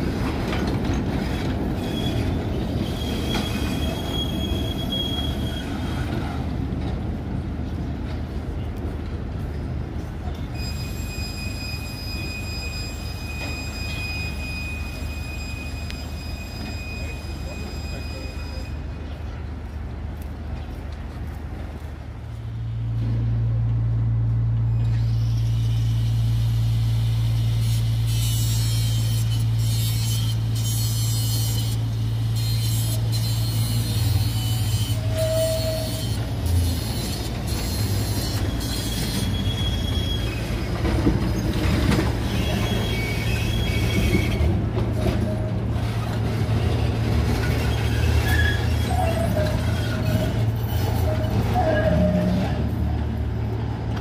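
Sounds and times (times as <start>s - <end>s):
tram wheel squeals: 0.0s - 7.0s, 9.5s - 19.5s, 24.6s - 54.0s
tram electrical hum: 0.0s - 54.0s
tram wheels clicking on track: 0.0s - 54.0s.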